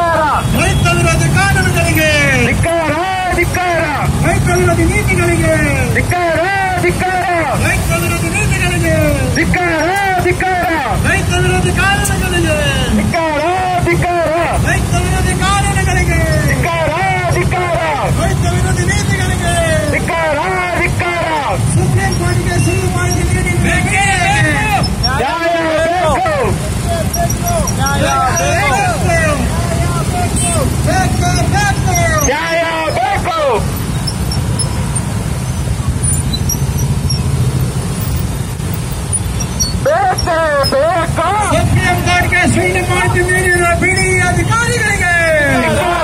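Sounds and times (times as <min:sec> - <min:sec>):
voice over loudspeakers: 0:00.0 - 0:33.7, 0:39.8 - 0:46.0
scooter and motorcycle engines humming: 0:00.0 - 0:46.0.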